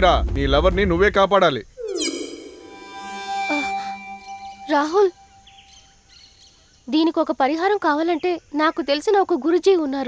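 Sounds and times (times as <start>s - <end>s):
held tone of film score: 0.0s - 6.0s
faint outdoor ambience: 0.0s - 10.0s
high bird chirps: 1.8s - 5.9s.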